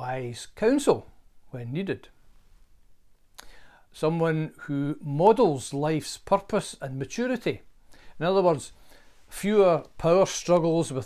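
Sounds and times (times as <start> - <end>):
mouth click: 3.3 - 3.6
short breath in: 3.4 - 3.9, 7.8 - 8.2, 8.8 - 9.3.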